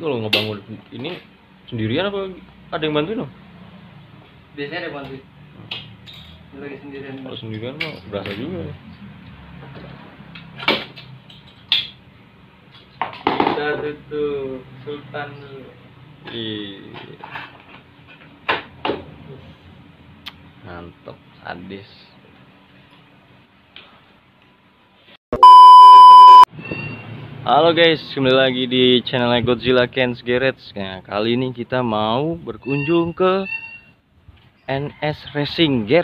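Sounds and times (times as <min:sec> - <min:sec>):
high-pitched electronic beep: 0:25.4 - 0:26.5.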